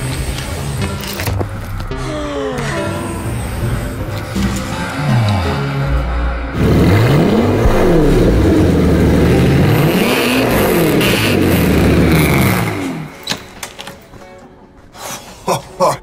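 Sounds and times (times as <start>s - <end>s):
car engine revving: 2.8s - 13.2s.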